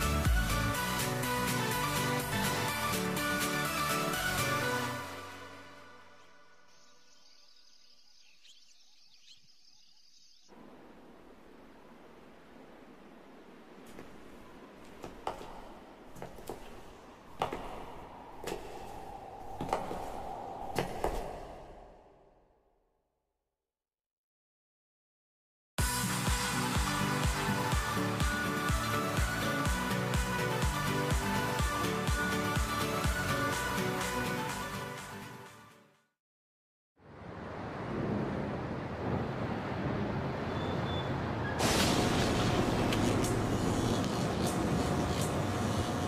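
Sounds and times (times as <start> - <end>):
forage harvester running: 41.6 - 45.9.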